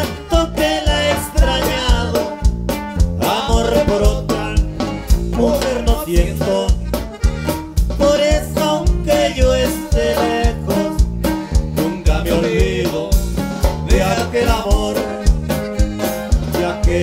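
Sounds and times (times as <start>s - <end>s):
accordion melody: 0.0s - 17.0s
bajo sexto and bass: 0.0s - 17.0s
steady beat: 0.0s - 17.0s.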